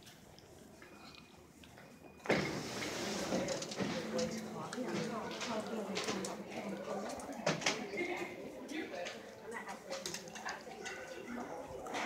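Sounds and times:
large indoor hall noise: 0.0 - 12.0.

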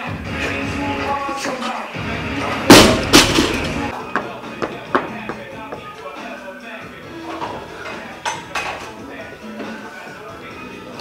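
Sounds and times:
background music: 0.0 - 11.0
barbell hitting platform: 2.7 - 3.9.

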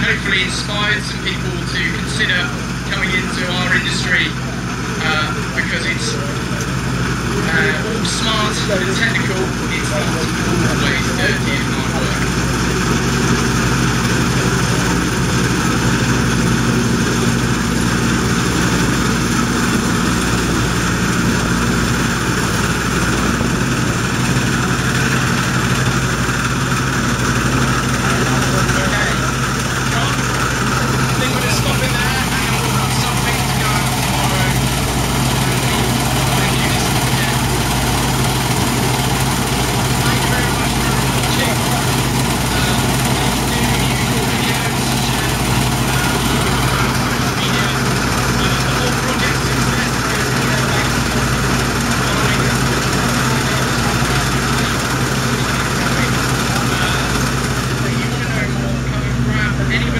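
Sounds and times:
combine harvester engine running: 0.0 - 59.9.

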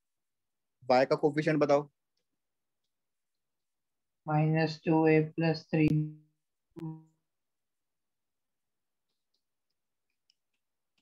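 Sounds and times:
man speaking: 0.8 - 1.9.

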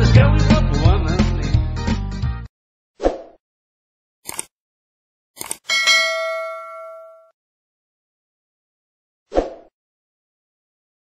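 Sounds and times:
bright bell ding: 5.7 - 7.3.

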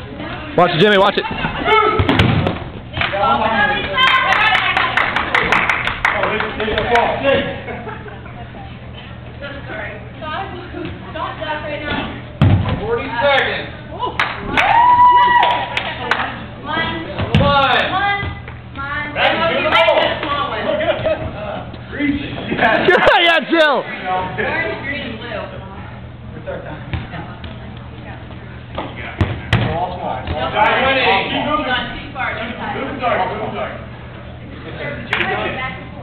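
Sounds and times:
dodgeball hitting with thud: 1.3 - 3.1, 11.8 - 13.0, 16.9 - 18.4, 28.7 - 30.6.

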